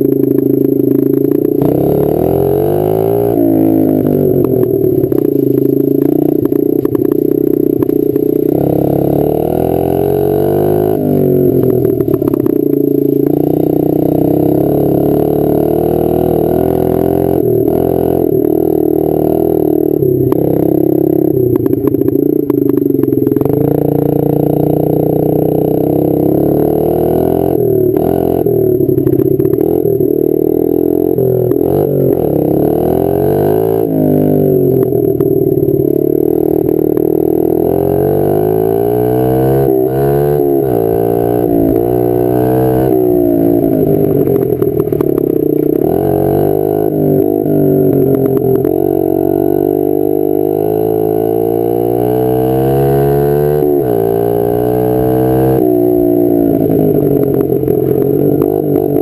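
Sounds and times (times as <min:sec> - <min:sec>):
motorbike engine accelerating: 0:00.0 - 0:59.0.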